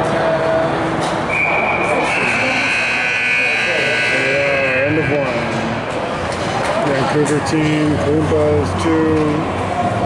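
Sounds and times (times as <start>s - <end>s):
voices in an ice rink: 0.0s - 10.0s
scoreboard buzzer: 1.4s - 5.8s.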